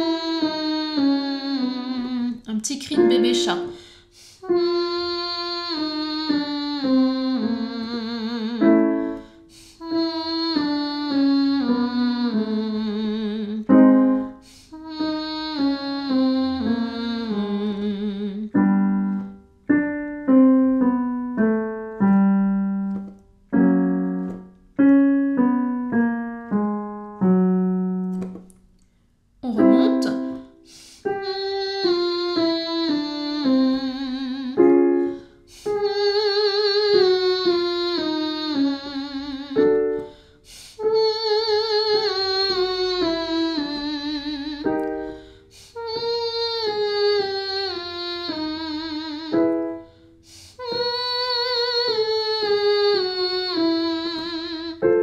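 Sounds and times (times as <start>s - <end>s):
woman singing vocal exercise: 0.0s - 19.2s, 29.4s - 49.8s
piano: 0.0s - 55.0s.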